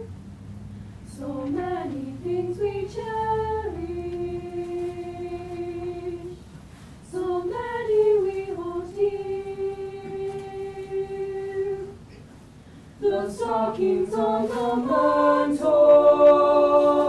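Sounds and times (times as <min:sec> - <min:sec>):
choir breath: 0:00.8 - 0:17.0
choir singing unaccompanied: 0:01.1 - 0:06.4, 0:07.1 - 0:12.0, 0:13.0 - 0:17.0.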